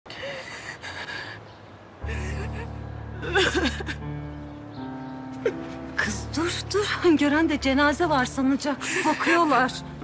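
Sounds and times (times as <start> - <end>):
woman gasping and sobbing: 0.1 - 4.0.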